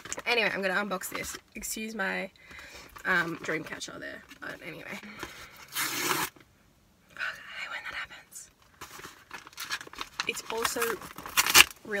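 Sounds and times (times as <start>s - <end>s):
package wrapping tearing: 5.6s - 6.4s, 8.8s - 12.0s
wrapping rustling: 8.6s - 12.0s.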